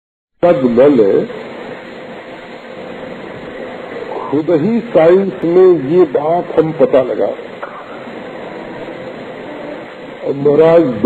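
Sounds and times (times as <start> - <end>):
faint hum: 0.4 - 11.0
recording hiss: 0.4 - 11.0.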